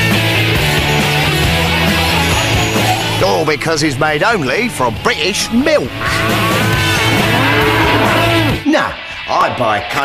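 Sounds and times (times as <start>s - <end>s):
cow mooing: 4.7s - 8.6s.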